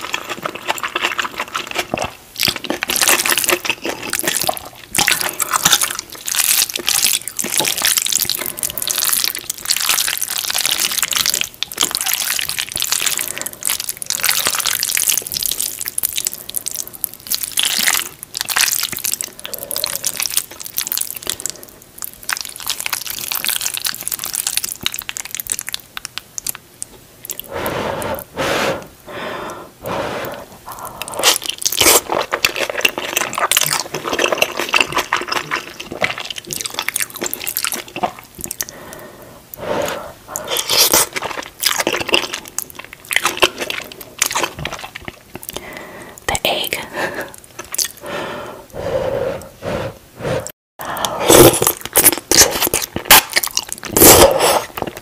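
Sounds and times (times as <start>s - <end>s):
wet chewing with clicks: 0.0s - 28.3s, 30.2s - 48.8s, 50.4s - 55.0s
noodle slurping: 27.3s - 46.2s, 47.1s - 55.0s.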